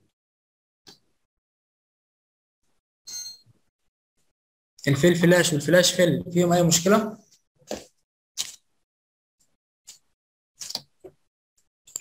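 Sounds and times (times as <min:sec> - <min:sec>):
high-pitched ding: 0:03.1 - 0:03.4.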